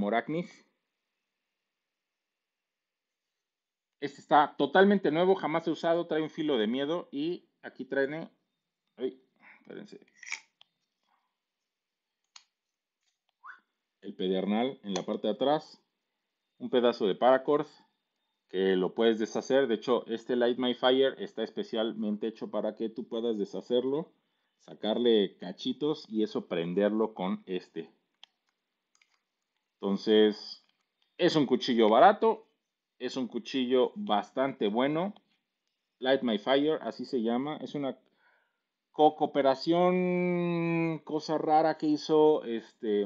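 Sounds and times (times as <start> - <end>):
man's voice: 14.0 - 15.8, 16.6 - 17.7, 18.6 - 24.0, 24.7 - 27.8, 29.8 - 30.6, 39.0 - 43.0.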